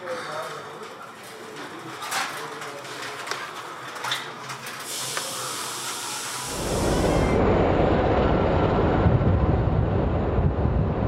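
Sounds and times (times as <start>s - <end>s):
street ambience: 0.0s - 11.0s
loud low rumbling: 6.5s - 11.0s.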